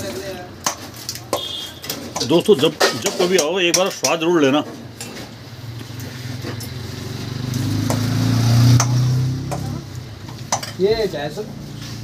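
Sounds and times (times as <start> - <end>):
metal utensils clinking: 0.0 - 5.4, 8.8 - 11.0
vehicle engine passing by: 5.6 - 10.1.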